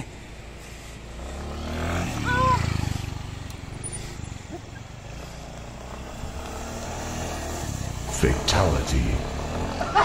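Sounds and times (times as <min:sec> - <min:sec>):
scooter engine droning: 0:00.0 - 0:10.0.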